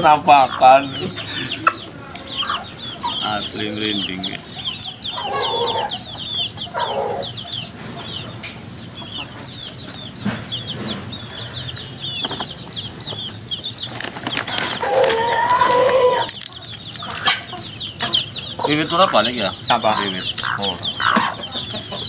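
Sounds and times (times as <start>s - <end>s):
chicks peeping: 0.0s - 22.0s
hen clucking: 0.0s - 22.0s.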